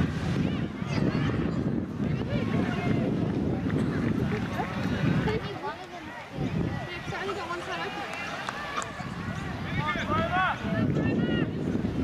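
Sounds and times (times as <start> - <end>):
voices shouting and calling out: 0.0 - 12.0.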